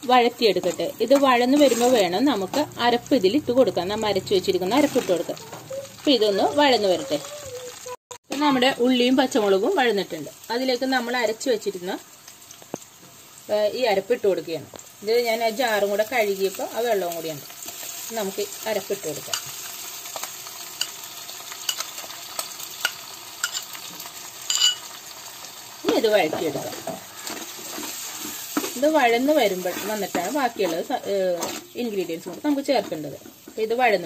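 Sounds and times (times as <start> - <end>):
shallots sizzling in oil: 0.0 - 34.0
spoon stirring and clicking on pot: 21.6 - 23.8.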